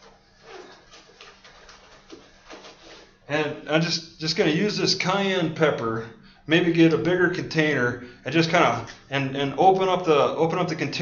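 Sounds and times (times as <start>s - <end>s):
soft handling rustles: 0.0s - 3.3s
steady low hum: 0.0s - 11.0s.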